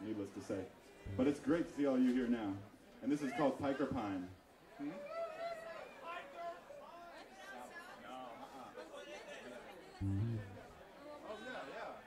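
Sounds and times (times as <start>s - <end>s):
crowd chatter: 0.0s - 12.0s
loud low-pitched note: 1.1s - 1.4s, 10.0s - 10.7s.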